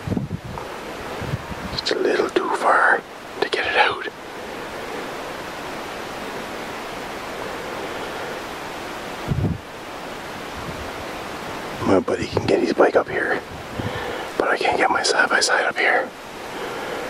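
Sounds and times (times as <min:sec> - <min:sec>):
wind buffeting microphone: 0:00.0 - 0:15.0
wind rushing through trees: 0:00.0 - 0:17.0.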